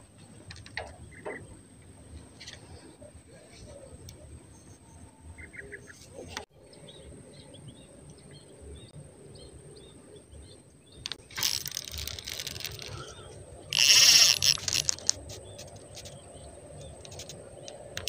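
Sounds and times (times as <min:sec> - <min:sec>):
reel clicks: 0:11.0 - 0:16.2
fishing rod and reel rustling: 0:11.0 - 0:18.0
rod scraping: 0:11.1 - 0:16.2.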